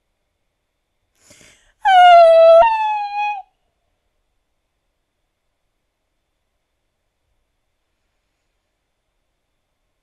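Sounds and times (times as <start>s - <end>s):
quick breath: 1.2s - 1.8s
woman whining wail: 1.9s - 3.4s.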